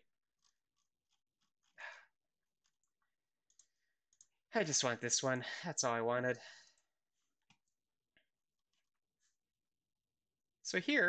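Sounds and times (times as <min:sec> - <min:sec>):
faint mouse clicks: 0:03.5 - 0:04.3.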